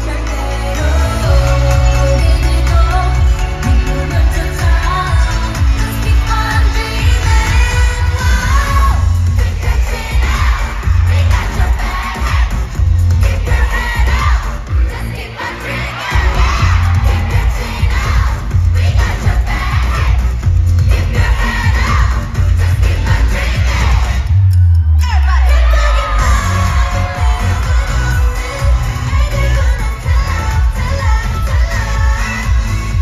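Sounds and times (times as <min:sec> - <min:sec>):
woman singing: 0:00.0 - 0:12.5, 0:25.3 - 0:33.0
pulsing bass beat: 0:00.0 - 0:15.3, 0:16.0 - 0:33.0
crowd cheering and singing along: 0:00.0 - 0:33.0.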